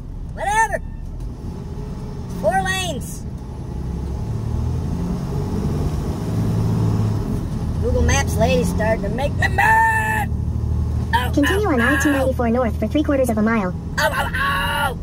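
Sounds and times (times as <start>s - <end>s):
truck diesel engine droning: 0.0s - 15.0s
person wailing: 14.0s - 15.0s.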